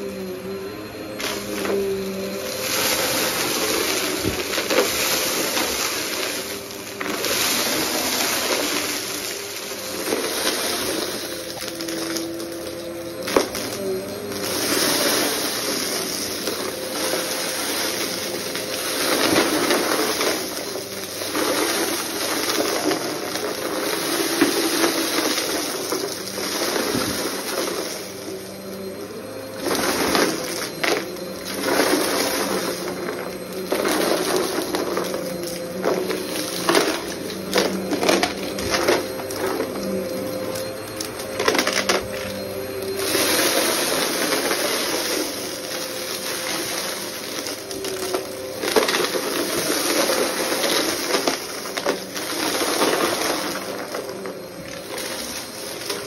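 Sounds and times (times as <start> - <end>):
vacuum cleaner running on carpet: 0.0 - 56.0
debris rattling through nozzle: 1.2 - 56.0.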